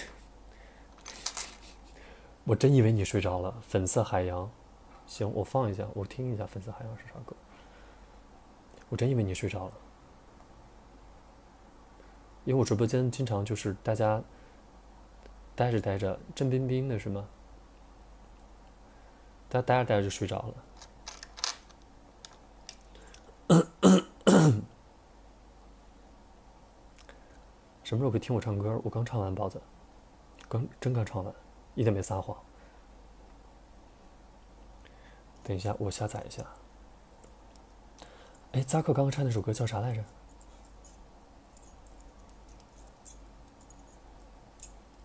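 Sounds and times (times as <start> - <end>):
faint breathing: 0.0 - 2.4, 7.4 - 8.3, 14.3 - 14.8, 18.8 - 19.4, 22.8 - 23.4, 27.0 - 27.5, 32.5 - 33.0, 34.8 - 35.4, 37.9 - 38.5
man coughing: 23.5 - 24.7.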